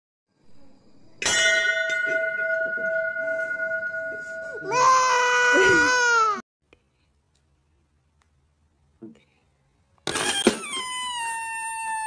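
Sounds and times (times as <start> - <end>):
steady ringing tone: 0.7 - 5.6
infant crying loudly: 4.6 - 6.4.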